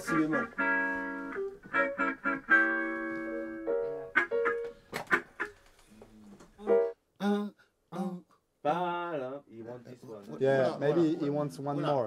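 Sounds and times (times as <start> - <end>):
person singing wordless melody: 6.6 - 8.9.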